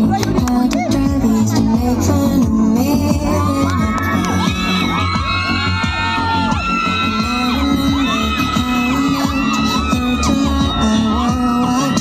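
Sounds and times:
music with low beat: 0:00.0 - 0:12.0
crowd cheering and whooping: 0:03.2 - 0:12.0
high shouts: 0:03.3 - 0:12.0.

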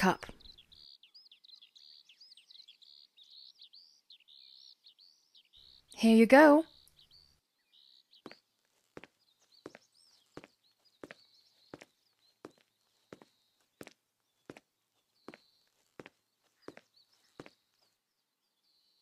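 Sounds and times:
faint bird chirps: 0:00.1 - 0:19.0
footsteps walking: 0:08.2 - 0:14.6, 0:15.3 - 0:17.6.

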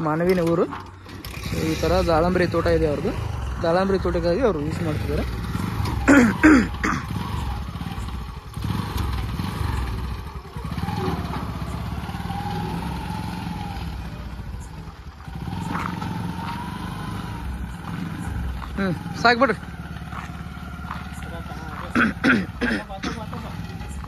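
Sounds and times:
motorcycle engine running: 0:00.0 - 0:24.0.

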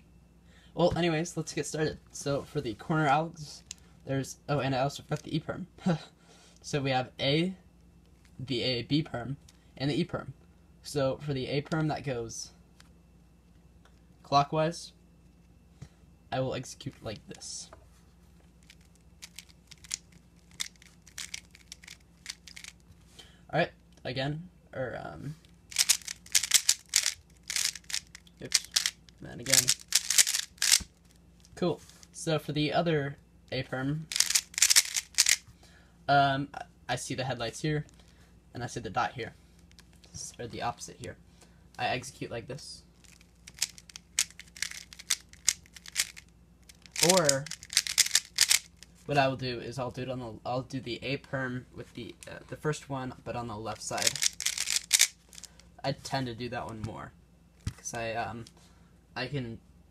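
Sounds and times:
puzzle cube layers clicking: 0:18.7 - 0:22.7, 0:25.7 - 0:30.9, 0:34.1 - 0:35.4, 0:43.1 - 0:46.2, 0:46.8 - 0:48.7, 0:54.0 - 0:55.5.

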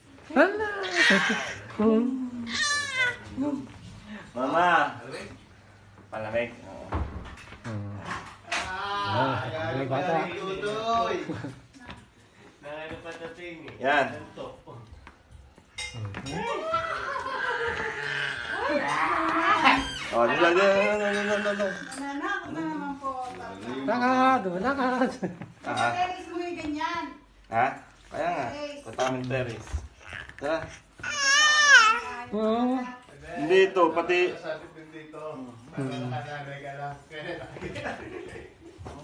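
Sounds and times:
toddler squealing: 0:17.9 - 0:20.2.

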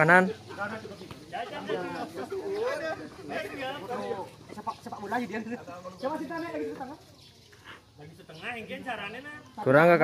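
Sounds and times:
people talking: 0:00.0 - 0:07.0.

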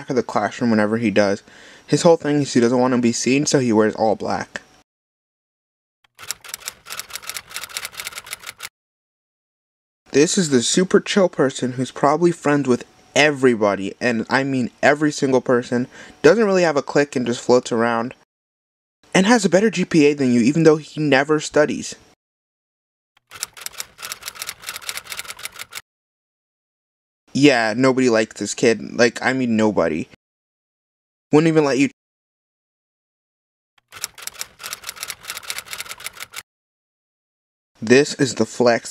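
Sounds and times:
keystroke clicks typing: 0:06.1 - 0:08.7, 0:23.2 - 0:25.8, 0:33.8 - 0:36.4.

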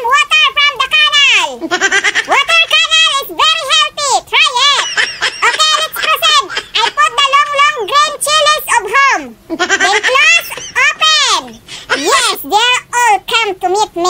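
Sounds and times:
high-pitched squeaky voice chattering: 0:00.0 - 0:14.0.

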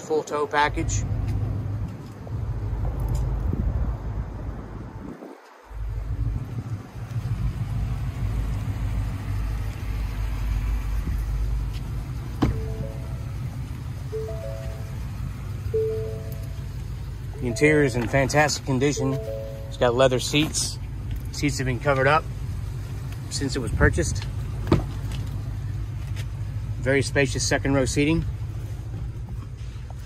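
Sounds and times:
steady low rumble: 0:01.1 - 0:27.0
background music notes: 0:12.5 - 0:20.0.

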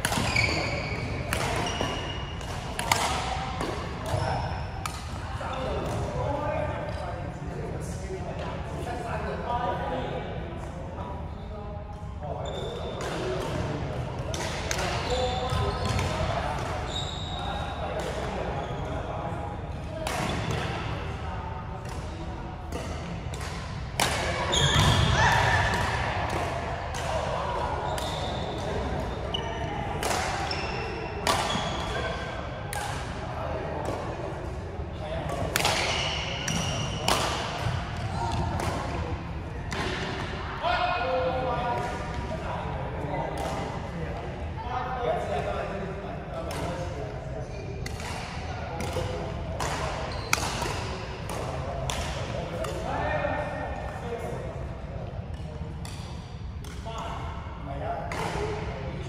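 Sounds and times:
racket hitting shuttlecock: 0:00.0 - 0:00.7, 0:01.3 - 0:04.2, 0:22.7 - 0:24.9, 0:31.2 - 0:31.9, 0:35.3 - 0:39.0, 0:47.8 - 0:52.8
sneakers squeaking on floor: 0:00.1 - 0:03.4, 0:12.4 - 0:13.4, 0:14.8 - 0:19.0, 0:24.2 - 0:25.9, 0:27.8 - 0:32.2, 0:35.8 - 0:38.6, 0:49.8 - 0:51.0.

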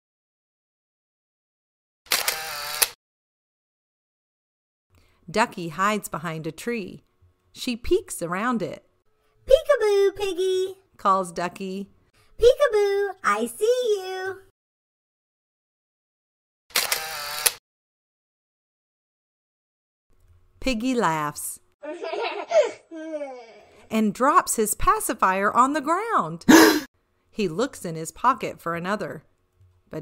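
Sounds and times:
camera shutter click: 0:02.1 - 0:03.0, 0:16.7 - 0:17.6
camera shutter whir: 0:02.1 - 0:03.0, 0:16.7 - 0:17.6.

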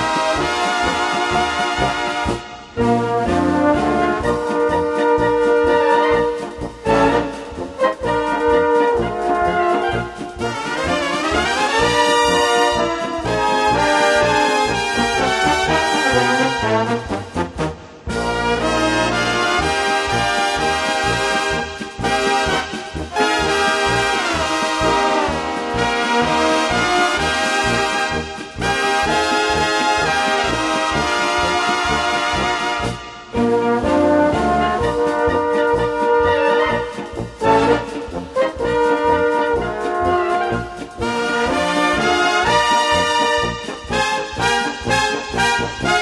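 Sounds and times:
brass band playing lively tune: 0:00.0 - 0:46.0
tubas playing bass line: 0:00.0 - 0:46.0.

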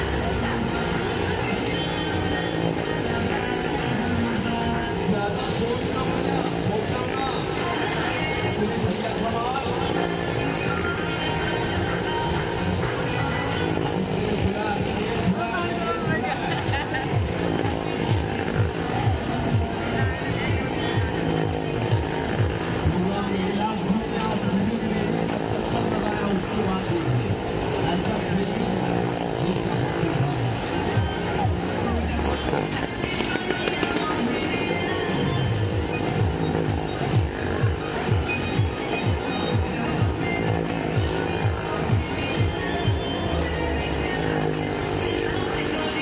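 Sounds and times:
loud music with singing: 0:00.0 - 0:46.0
motorcycle engine running: 0:00.0 - 0:46.0.

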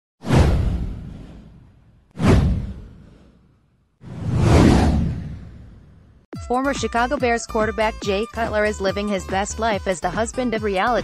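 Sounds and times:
deep boom: 0:00.2 - 0:03.2, 0:04.1 - 0:06.2.

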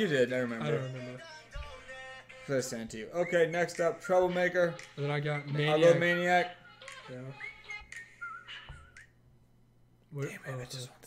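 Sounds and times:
person whistling: 0:07.3 - 0:09.2.

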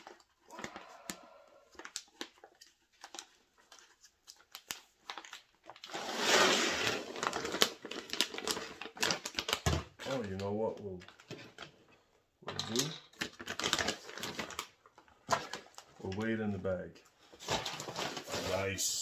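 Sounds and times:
plastic bag crinkling: 0:00.0 - 0:11.1, 0:13.3 - 0:16.2
dry beans pouring into bag: 0:05.9 - 0:08.4.

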